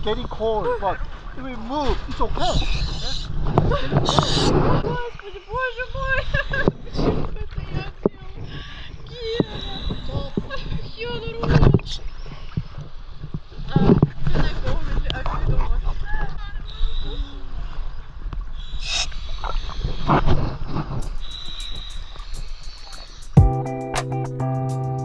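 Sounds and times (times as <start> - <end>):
sea water sloshing and splashing: 0.0 - 23.2
guitar music: 23.4 - 25.0.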